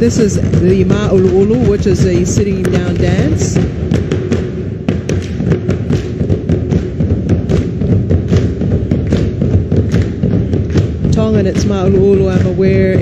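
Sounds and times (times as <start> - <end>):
skin drums struck with sticks: 0.0 - 13.0.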